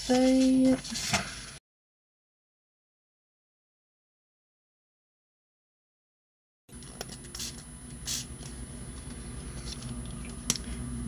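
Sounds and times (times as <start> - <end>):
spray bottle hissing: 7.4 - 8.3.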